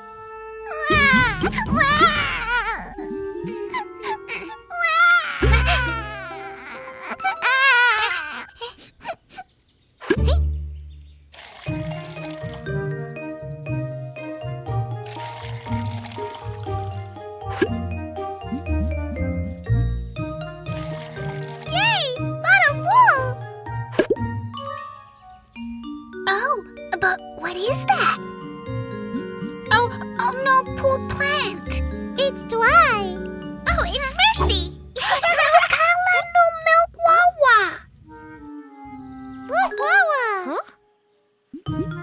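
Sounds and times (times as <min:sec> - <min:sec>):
light children's music: 0:00.0 - 0:08.9, 0:10.2 - 0:42.0
cartoon baby crying: 0:00.6 - 0:09.4.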